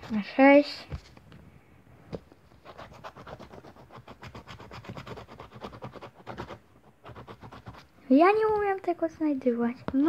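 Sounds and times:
scratch card being scratched: 2.6s - 7.9s.

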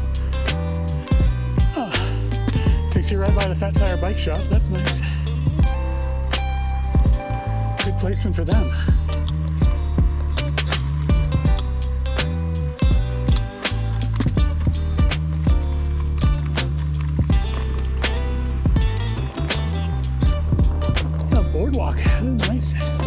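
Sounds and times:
deep bass line: 0.0s - 23.0s
music with steady beat: 0.0s - 23.0s.

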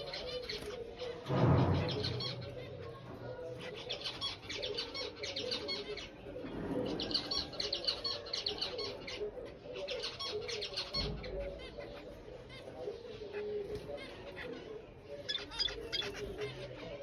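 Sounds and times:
finches chattering: 0.0s - 17.0s.

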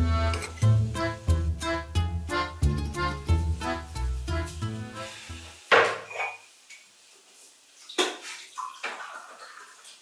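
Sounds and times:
dishes clattering: 5.7s - 6.5s
water splashing in a sink: 7.8s - 10.0s.

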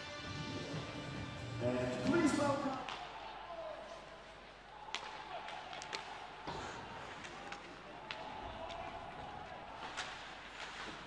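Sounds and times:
music: 0.0s - 2.7s.

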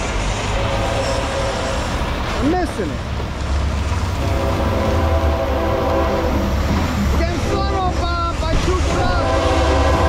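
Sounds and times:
truck engine rumble: 0.0s - 10.0s
locomotive air horn: 0.5s - 2.0s, 4.2s - 6.4s, 7.3s - 8.2s, 8.8s - 10.0s.

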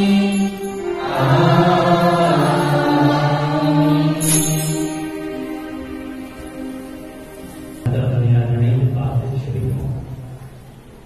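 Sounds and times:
held musical notes: 0.0s - 11.0s
man chanting in low voice: 7.8s - 10.2s.

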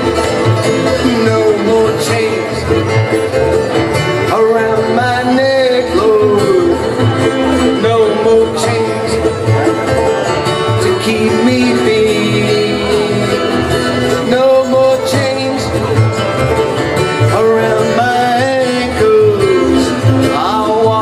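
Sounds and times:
acoustic guitar: 0.0s - 21.0s
banjo: 0.0s - 21.0s
mandolin: 0.0s - 21.0s
upright bass: 0.0s - 21.0s.

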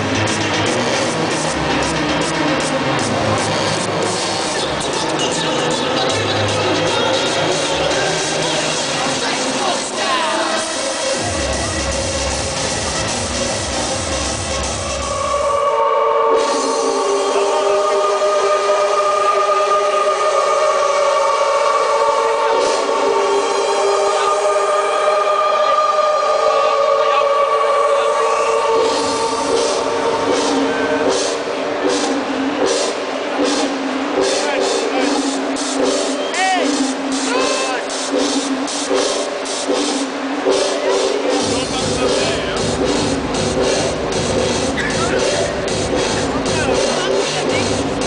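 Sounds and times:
loud electronic dance music: 0.0s - 48.0s
held synthesizer chord: 10.6s - 36.2s.

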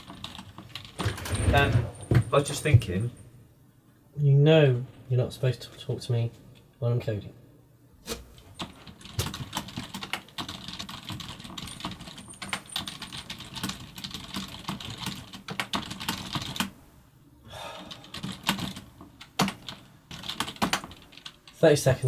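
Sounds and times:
fast typing on keyboard: 0.0s - 1.3s, 8.6s - 16.8s, 17.8s - 21.6s.

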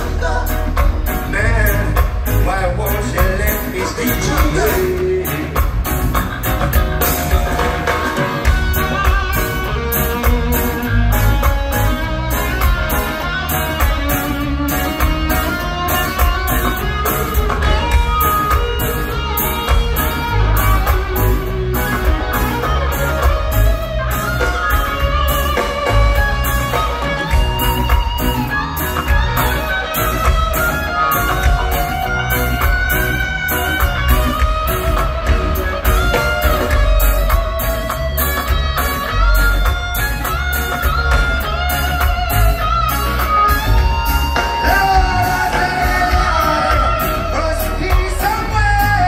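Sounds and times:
drums with steady beat: 0.0s - 49.0s
electric guitar: 0.0s - 49.0s
heavy bass line: 0.0s - 49.0s.

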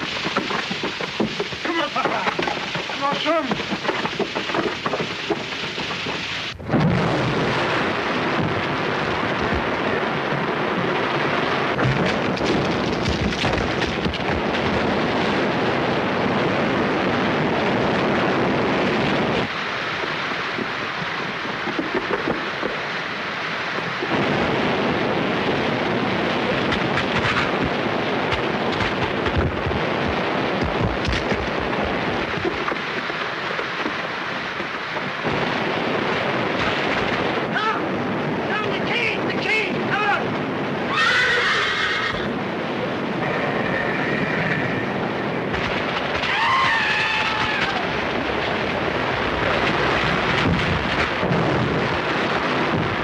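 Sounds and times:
rushing water torrent: 0.0s - 53.0s
water crashes: 0.0s - 53.0s.

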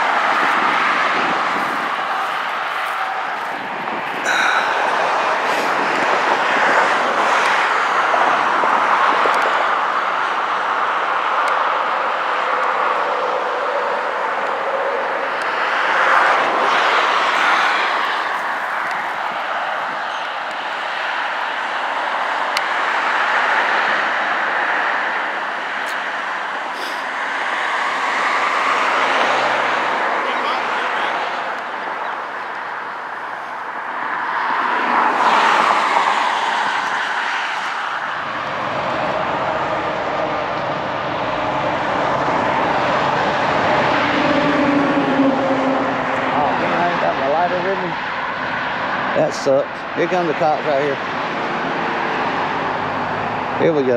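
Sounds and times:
road traffic passing: 0.0s - 53.9s.

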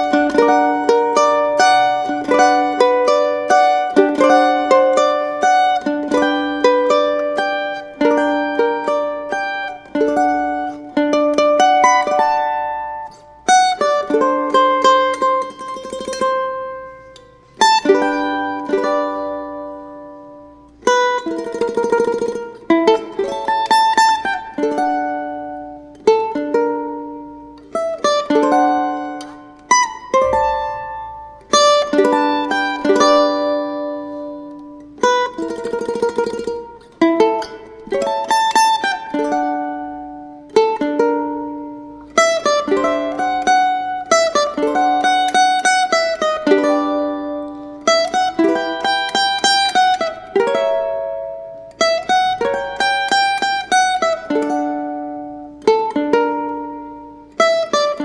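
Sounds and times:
small guitar plucked chords: 0.0s - 58.0s.

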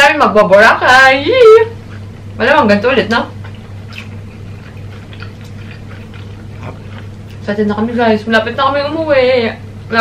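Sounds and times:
steady low hum: 0.0s - 10.0s
person chewing with wet smacks: 1.8s - 2.4s, 3.3s - 7.9s.

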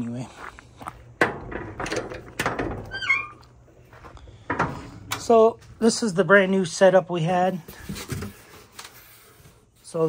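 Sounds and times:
metal door clanks: 1.2s - 3.4s.

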